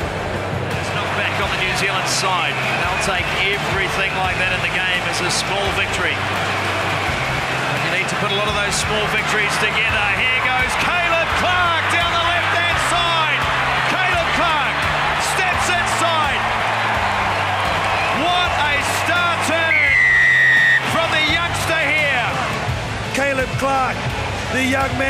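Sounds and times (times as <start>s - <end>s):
background music with bass line: 0.0s - 25.0s
stadium crowd cheering: 0.0s - 25.0s
long high whistle: 19.7s - 20.8s.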